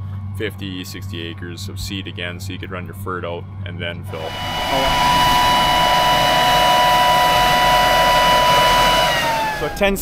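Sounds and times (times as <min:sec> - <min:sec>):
fan high whine: 0:00.0 - 0:10.0.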